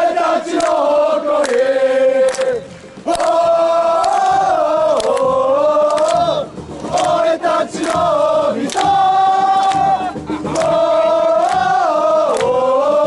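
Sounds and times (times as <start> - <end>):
crowd singing chant in unison: 0.0 - 13.0
handclaps: 0.5 - 13.0.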